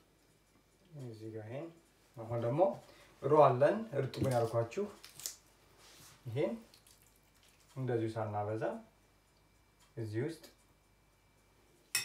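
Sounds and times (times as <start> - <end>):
man speaking: 0.9 - 5.0, 7.8 - 8.9, 10.0 - 10.6.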